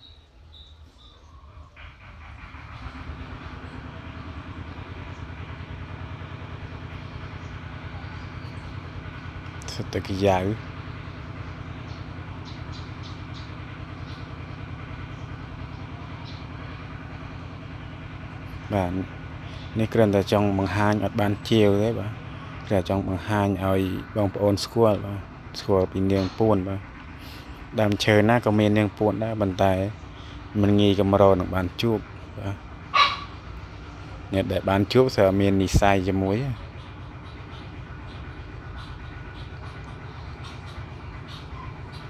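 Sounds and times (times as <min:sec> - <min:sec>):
engine running steadily: 0:00.0 - 0:42.0
dog barking: 0:32.9 - 0:33.3.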